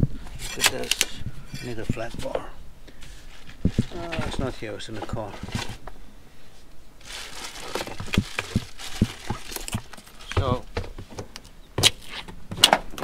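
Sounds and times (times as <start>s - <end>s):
person murmuring: 3.9s - 4.5s.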